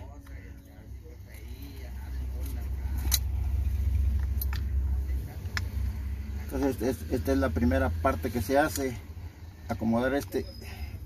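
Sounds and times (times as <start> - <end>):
sharp metal clicks of pliers: 3.0 - 3.4.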